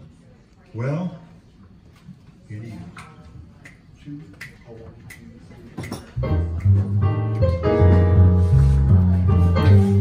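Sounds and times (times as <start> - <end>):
finger snaps: 4.4 - 7.0.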